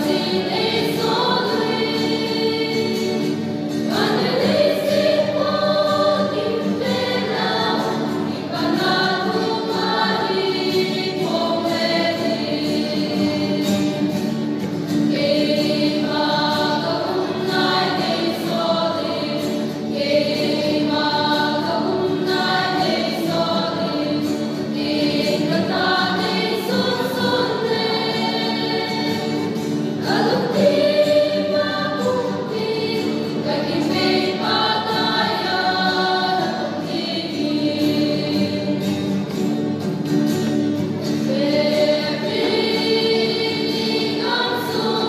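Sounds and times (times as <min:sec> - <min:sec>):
mixed choir singing: 0:00.0 - 0:39.9, 0:41.0 - 0:45.0
acoustic guitar: 0:00.0 - 0:45.0.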